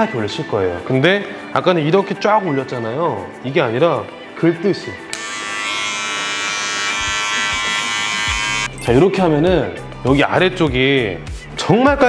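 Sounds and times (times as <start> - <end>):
electric hair clippers buzzing: 5.1 - 8.8.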